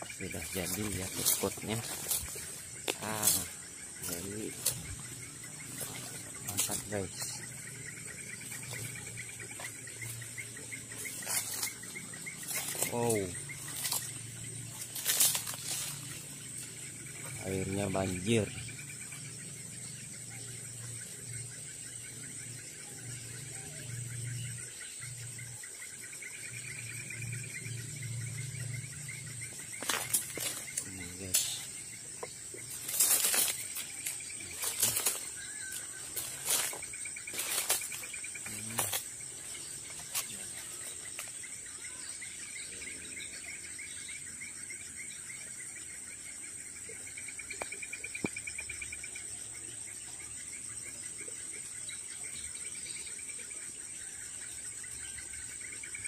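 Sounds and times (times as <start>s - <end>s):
cricket-like trills: 0.0s - 56.0s
insect high-pitched whine: 0.0s - 56.0s
footsteps through leaf litter: 0.4s - 4.8s, 14.8s - 16.3s, 32.7s - 39.0s.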